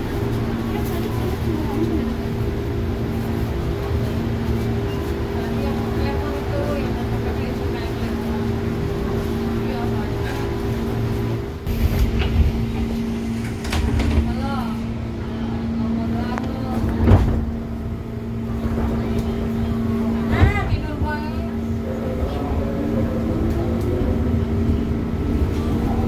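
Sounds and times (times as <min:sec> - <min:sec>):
train electrical hum: 0:00.0 - 0:26.0.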